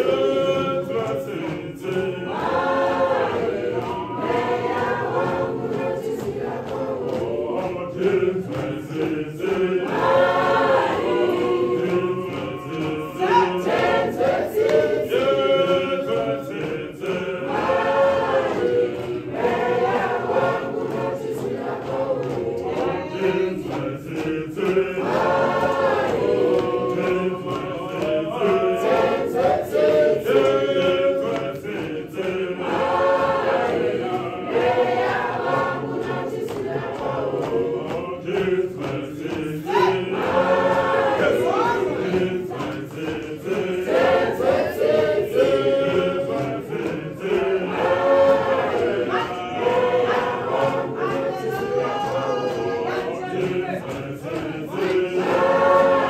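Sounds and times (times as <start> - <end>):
church choir singing a hymn: 0.0 - 56.0.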